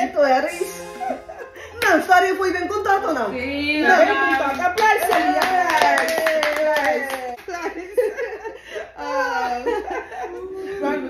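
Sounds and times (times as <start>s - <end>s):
hands clapping quickly: 4.4s - 7.6s.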